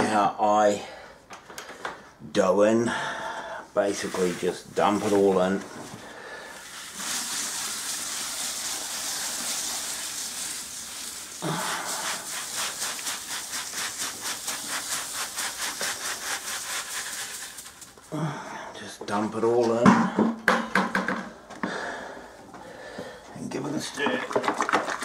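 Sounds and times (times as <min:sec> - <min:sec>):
grain pouring into water: 0:06.4 - 0:18.1.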